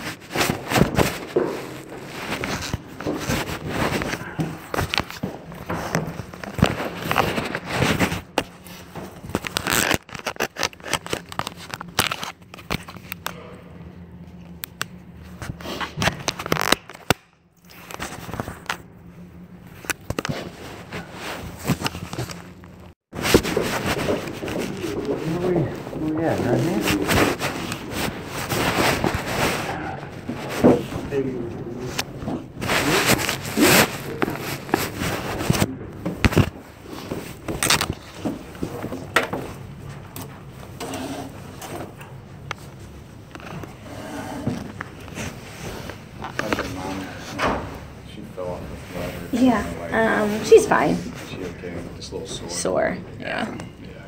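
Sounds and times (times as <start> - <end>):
clothing rubbing on microphone: 0.0 - 12.2, 19.7 - 38.9
muffled voices: 23.6 - 36.2, 43.6 - 54.0.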